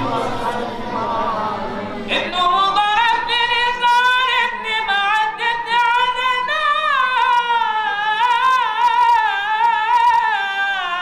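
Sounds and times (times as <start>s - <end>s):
man singing unaccompanied: 2.1s - 11.0s.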